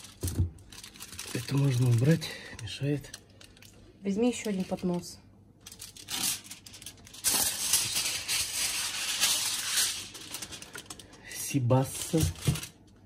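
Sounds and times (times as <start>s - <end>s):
aluminium foil crinkling and tearing: 0.0s - 5.0s, 5.6s - 13.0s.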